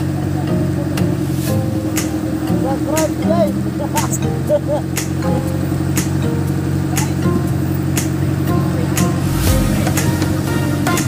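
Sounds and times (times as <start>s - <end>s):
music with steady beat: 1.0s - 3.4s, 5.0s - 11.0s.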